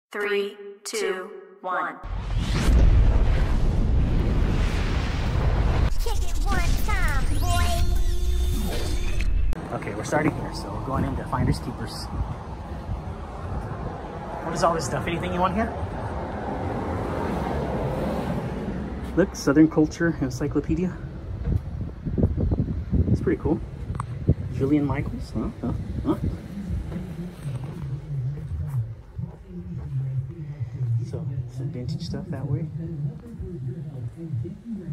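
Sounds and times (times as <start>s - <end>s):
bass-heavy explosion rumble: 2.1s - 7.9s, 21.1s - 27.2s
low voice murmuring: 25.4s - 34.9s.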